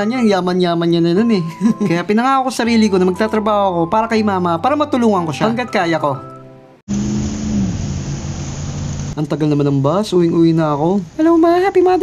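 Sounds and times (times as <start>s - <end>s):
vehicle engine drone: 6.9s - 9.2s.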